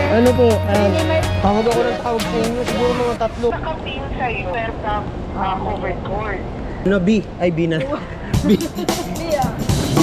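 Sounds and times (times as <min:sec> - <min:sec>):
background music: 0:00.0 - 0:03.4, 0:08.4 - 0:10.0
indistinct voices talking: 0:00.0 - 0:06.4, 0:07.9 - 0:10.0
traffic noise: 0:00.0 - 0:10.0.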